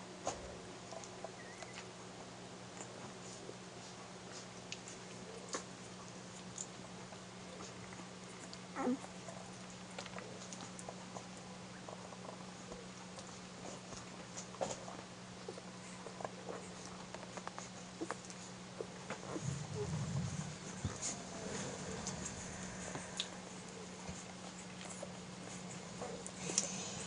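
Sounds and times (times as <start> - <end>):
steady low hum: 0.0 - 27.0
puppies suckling clicks: 0.8 - 1.9, 4.3 - 19.4, 23.2 - 26.8
low murmur: 15.8 - 27.0.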